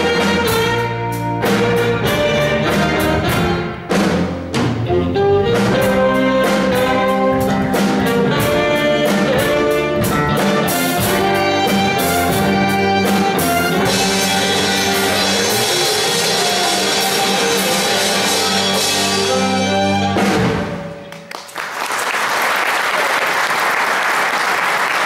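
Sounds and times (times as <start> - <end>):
saxophones: 0.0 - 3.9, 4.9 - 21.1
steady drum beat: 0.0 - 20.9
live band playing instrumental: 0.0 - 21.3.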